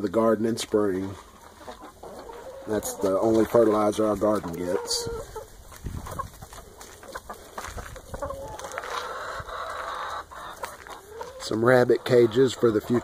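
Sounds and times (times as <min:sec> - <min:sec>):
chickens clucking: 0:00.0 - 0:13.0
chicken drawn-out call: 0:06.1 - 0:13.0.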